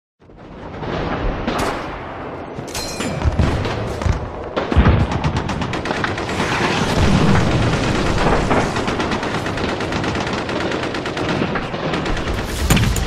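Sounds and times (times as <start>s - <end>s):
gunfire with deep booms: 0.2s - 13.0s
machine-gun shots: 3.4s - 13.0s.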